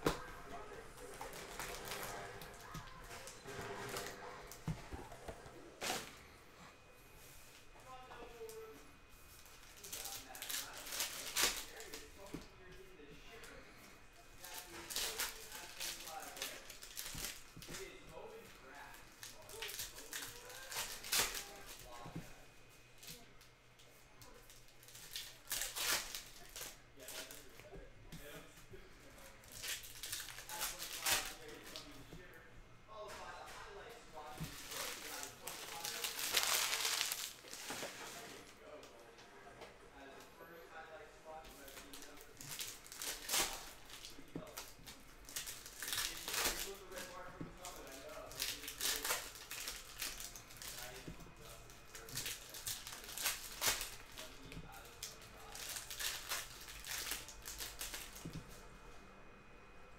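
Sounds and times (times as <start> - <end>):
foil wrappers crinkling and tearing: 0.1 - 4.7, 9.4 - 22.4, 24.2 - 28.4, 29.1 - 32.3, 34.2 - 38.6, 41.5 - 58.5
cards being handled: 34.2 - 38.4.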